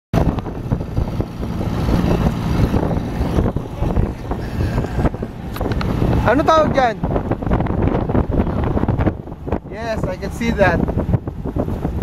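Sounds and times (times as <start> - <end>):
road noise from moving vehicle: 0.1 - 12.0
wind buffeting microphone: 0.2 - 12.0.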